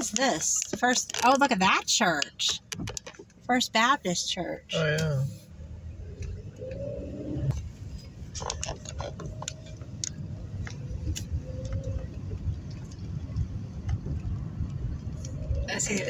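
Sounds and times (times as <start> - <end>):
road and engine rumble in car: 0.0 - 16.0.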